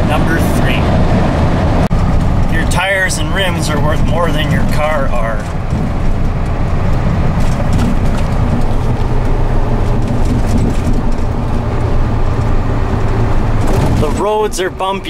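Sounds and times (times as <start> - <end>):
truck driving on bumpy road: 0.0 - 15.0.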